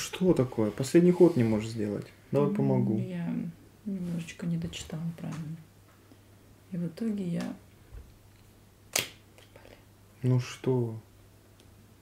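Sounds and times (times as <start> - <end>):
faint low hum: 0.0 - 12.0
sharp click: 8.9 - 9.2.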